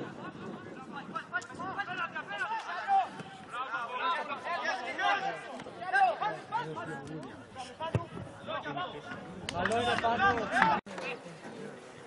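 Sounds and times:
crowd voices calling and chattering: 0.0s - 12.0s.

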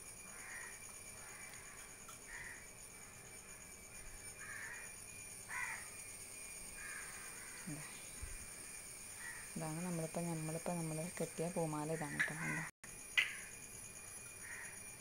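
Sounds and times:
crow cawing: 0.3s - 2.6s, 4.4s - 4.9s, 5.5s - 5.9s, 6.8s - 7.7s, 9.2s - 9.6s, 12.0s - 12.7s, 14.4s - 14.8s.

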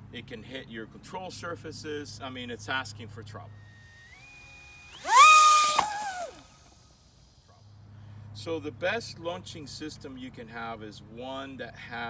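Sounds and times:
electric motor and propeller whine: 3.5s - 7.5s.

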